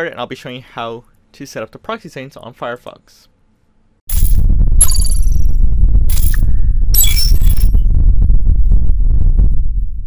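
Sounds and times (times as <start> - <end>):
deep bass rumble: 4.1 - 10.0.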